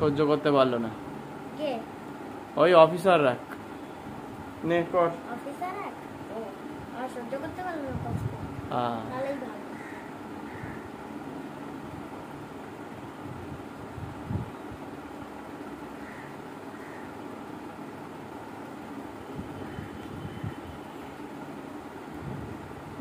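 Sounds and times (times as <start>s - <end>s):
low background hum: 0.0s - 23.0s.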